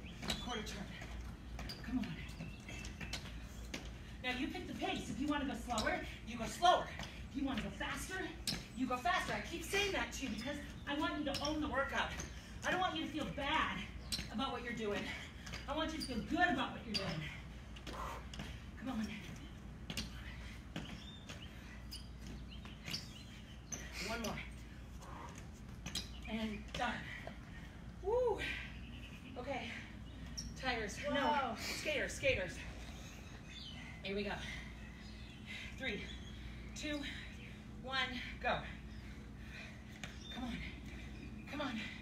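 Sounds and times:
birds chirping: 0.0s - 42.0s
feet and hands thudding on patio: 0.0s - 42.0s
steady low hum: 0.0s - 42.0s.

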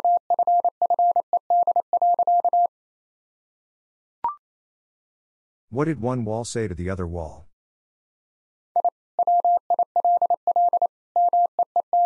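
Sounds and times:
morse code tone: 0.0s - 2.7s, 8.8s - 12.0s.

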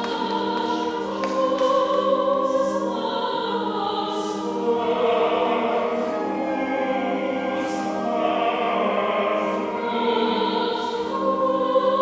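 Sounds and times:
congregation singing a hymn: 0.0s - 12.0s
organ chords: 2.4s - 12.0s.

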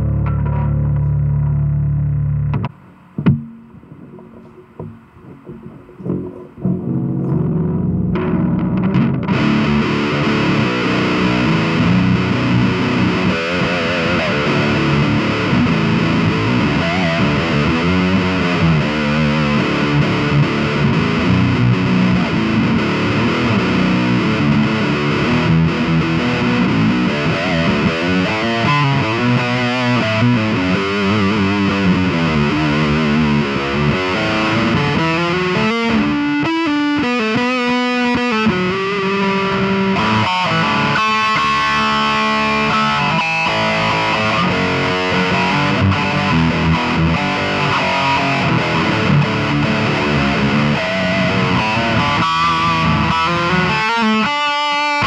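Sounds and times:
distorted electric guitar: 0.0s - 55.0s.

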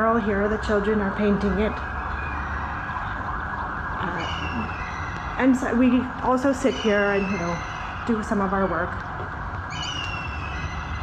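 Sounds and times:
city background noise: 0.0s - 11.0s.

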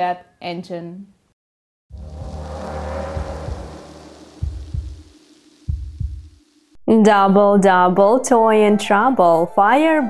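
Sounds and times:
low thunder-like rumble: 1.9s - 6.5s
rain hiss: 2.0s - 6.8s.

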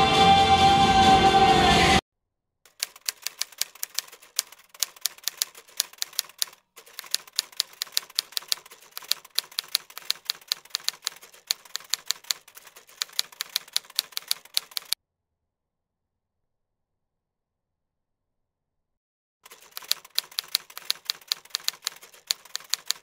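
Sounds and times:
typewriter key clicks: 2.7s - 15.0s, 19.5s - 23.0s.

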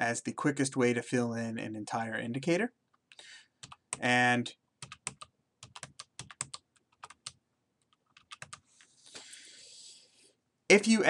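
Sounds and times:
computer keyboard keys clicking: 4.8s - 8.6s.

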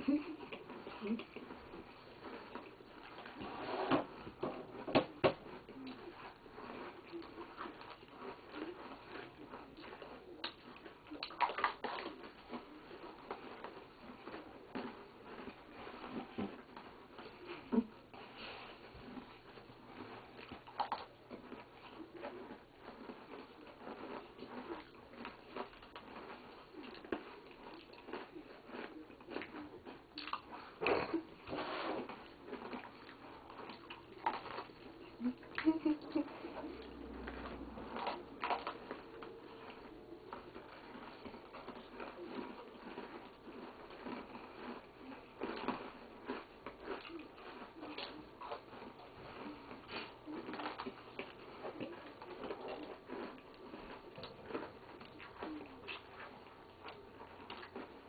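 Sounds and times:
people chewing cookies: 0.0s - 58.0s
mouth smacks: 9.7s - 12.7s.

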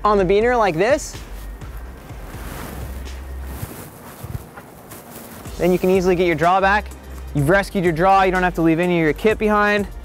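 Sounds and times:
wind buffeting microphone: 1.6s - 5.6s.

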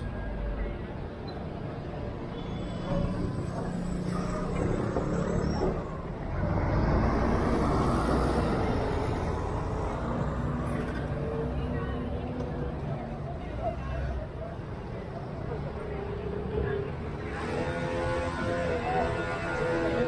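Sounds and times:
street traffic: 0.0s - 20.0s.

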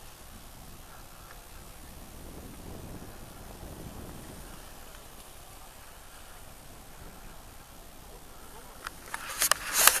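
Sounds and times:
faint outdoor hiss: 0.0s - 10.0s
handling clicks and rustles: 8.0s - 10.0s.

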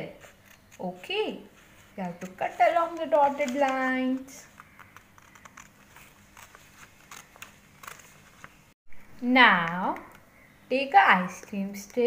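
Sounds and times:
scissors cutting paper: 2.0s - 8.2s.

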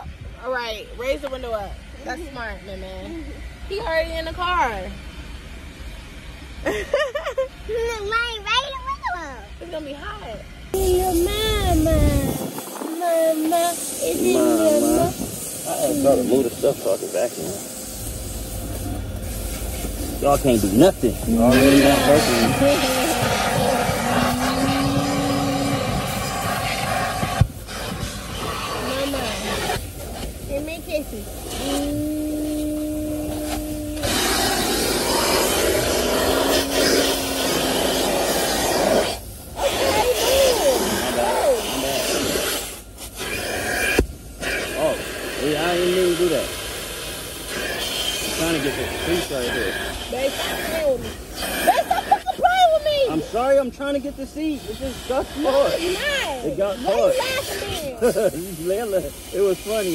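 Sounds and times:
vacuum hose suction whooshing: 10.7s - 52.3s.

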